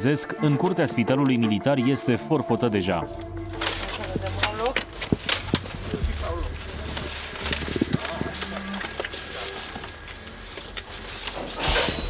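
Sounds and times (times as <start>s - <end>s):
people talking: 0.0s - 3.1s, 3.7s - 10.4s.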